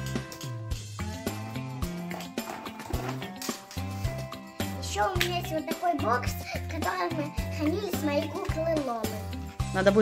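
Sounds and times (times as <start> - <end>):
music with bass line and beat: 0.0 - 5.6.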